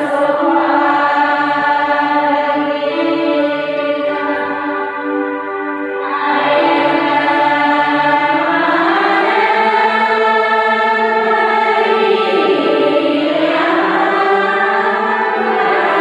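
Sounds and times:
women's choir singing: 0:00.0 - 0:16.0.

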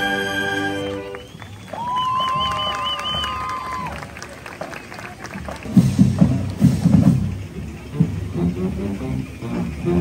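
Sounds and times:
marching band music: 0:00.0 - 0:10.0.

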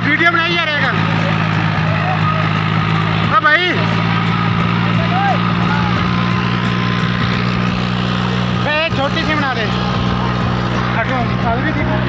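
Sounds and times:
tractor diesel engine running: 0:00.0 - 0:12.0
man shouting: 0:04.9 - 0:06.3.

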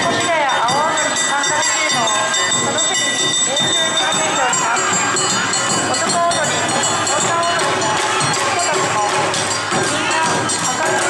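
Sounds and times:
dancers shouting calls: 0:00.0 - 0:11.0
drums: 0:00.0 - 0:11.0
hand gongs ringing: 0:00.0 - 0:11.0.

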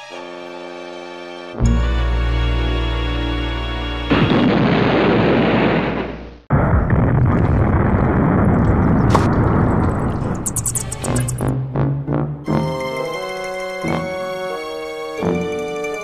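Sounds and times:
firework rushing blast: 0:04.1 - 0:11.2.

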